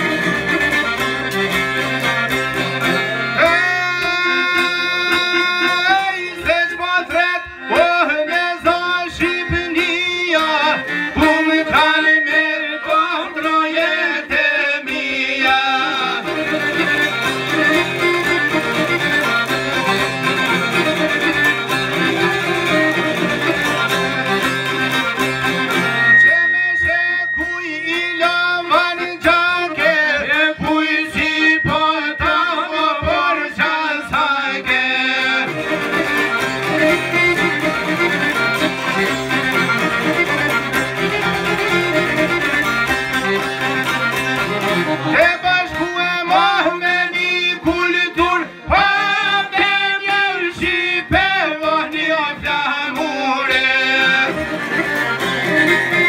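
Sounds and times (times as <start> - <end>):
accordion: 0.0 - 56.0
plucked lutes strumming: 0.0 - 56.0
man singing into a microphone: 3.4 - 17.1, 26.2 - 35.9, 45.0 - 54.6.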